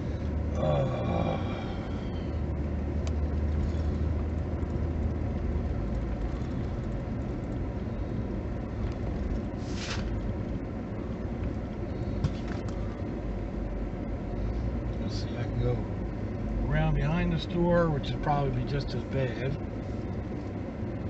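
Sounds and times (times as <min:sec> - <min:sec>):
car engine and tyres rumble: 0:00.0 - 0:21.0.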